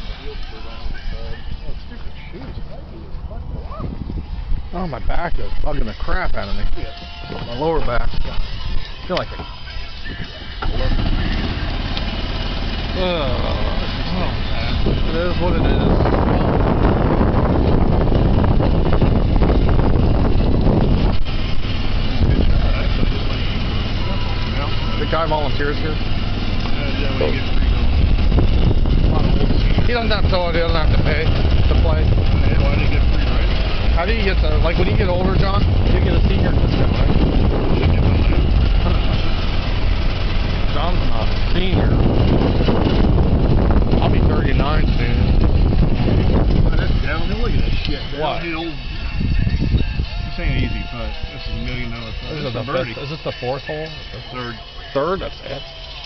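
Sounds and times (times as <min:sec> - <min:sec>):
golf cart driving on grass: 0:00.0 - 0:56.0.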